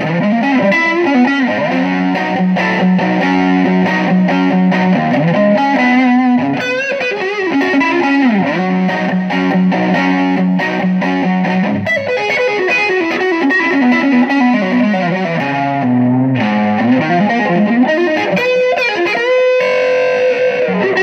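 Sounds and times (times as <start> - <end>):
distorted electric guitar lead: 0.0 - 21.0.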